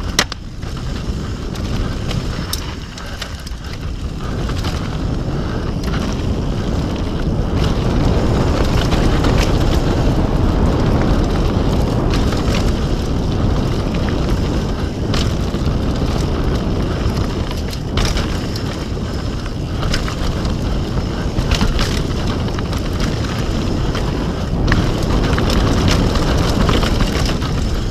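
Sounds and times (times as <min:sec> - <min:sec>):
bike clicks and rattles: 0:00.0 - 0:27.9
tyres rolling over gravel: 0:00.0 - 0:27.9
wind rushing over microphone: 0:00.0 - 0:27.9.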